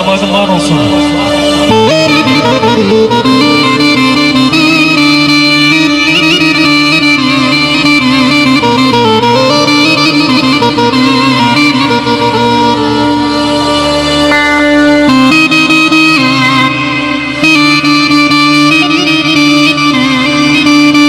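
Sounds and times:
held drone note: 0.0 - 21.0
synthesizer keyboard melody: 0.0 - 21.0.

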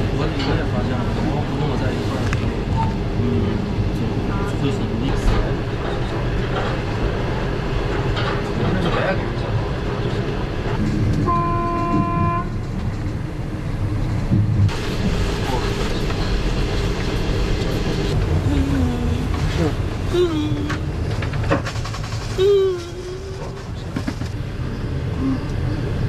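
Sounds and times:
train rumbling: 0.0 - 26.0
train horn blast: 11.2 - 12.6.

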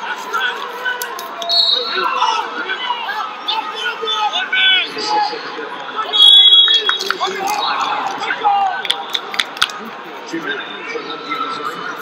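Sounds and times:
referee's whistle blast: 6.1 - 7.2.

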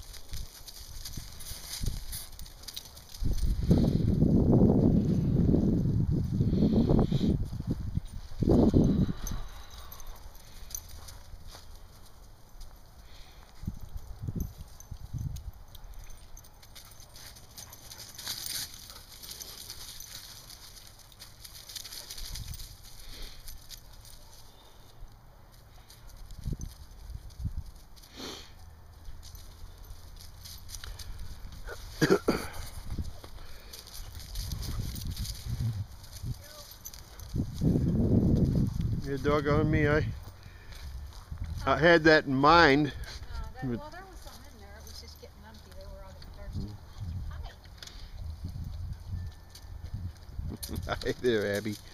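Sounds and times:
dogs scuffling and grumbling: 0.0 - 4.1, 13.6 - 24.8, 29.0 - 39.0
person laughing: 32.0 - 32.7.

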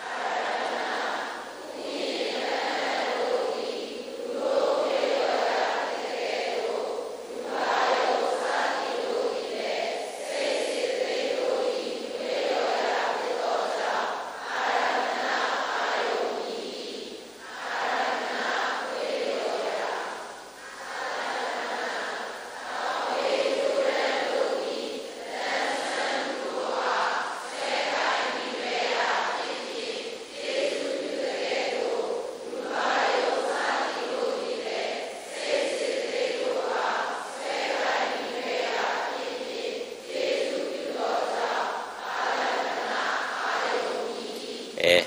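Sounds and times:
group of voices chanting: 0.0 - 45.0.

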